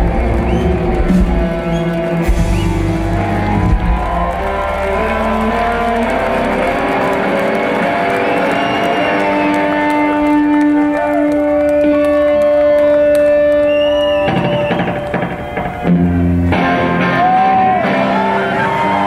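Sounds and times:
drums: 0.0s - 19.0s
electric guitars: 0.0s - 19.0s.

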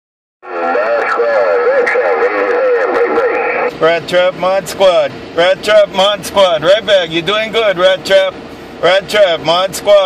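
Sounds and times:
garbled voice over radio: 0.4s - 3.8s
steady radio tones: 0.4s - 4.2s.

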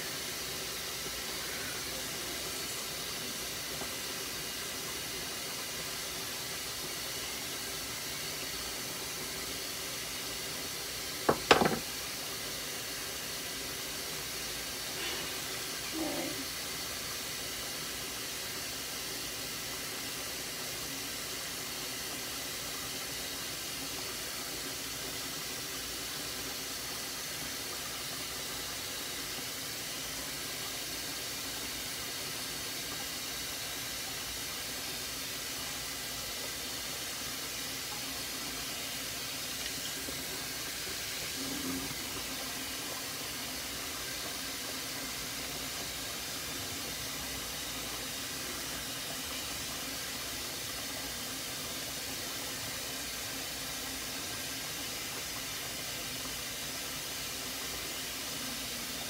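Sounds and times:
sharp knocks: 11.3s - 11.9s.

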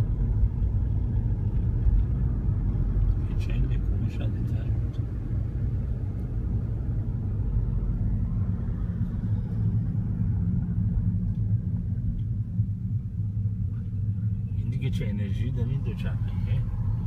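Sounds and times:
car engine and road noise: 0.0s - 17.0s.

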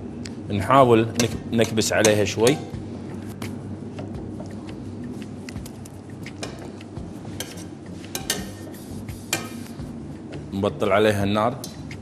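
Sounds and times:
metal spoon clinking against pot: 1.2s - 2.7s, 7.4s - 8.6s.

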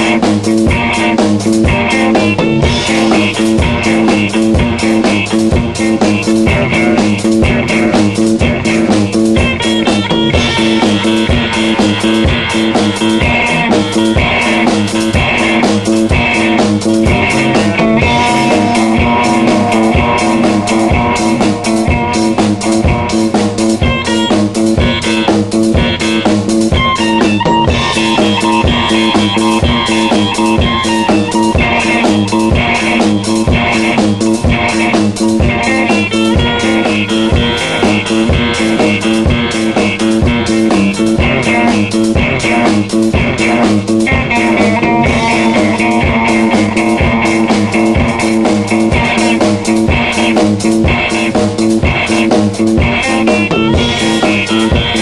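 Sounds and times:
bass guitar: 0.0s - 55.0s
drum kit beat: 0.0s - 55.0s
electric guitar: 0.0s - 55.0s.

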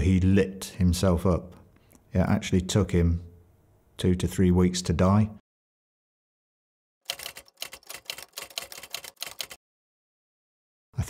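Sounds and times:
rapid mechanical clicks: 7.1s - 9.6s.

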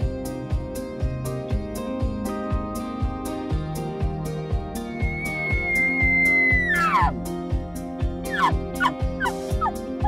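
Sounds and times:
background music with steady beat: 0.0s - 10.0s
elk call whistle: 5.0s - 7.1s.

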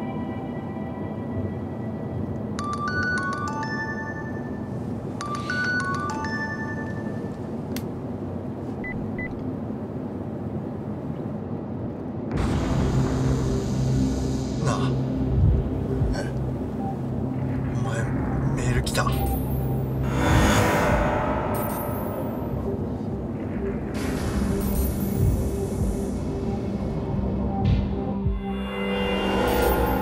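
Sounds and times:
noisy swell: 9.8s - 30.0s
low rumbling drone: 12.1s - 30.0s
high chiming synth notes: 19.0s - 23.2s, 24.4s - 26.2s, 28.4s - 30.0s.

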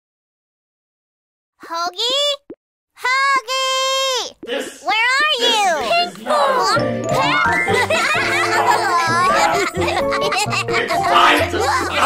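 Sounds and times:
high child-like voice exclamation: 1.6s - 2.4s, 3.0s - 7.6s.

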